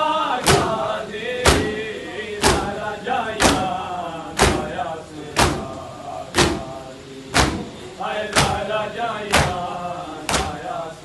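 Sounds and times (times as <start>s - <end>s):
voices chanting: 0.0s - 11.0s
crowd beating chests: 0.4s - 3.8s, 4.4s - 4.8s, 5.4s - 5.8s, 6.4s - 10.7s.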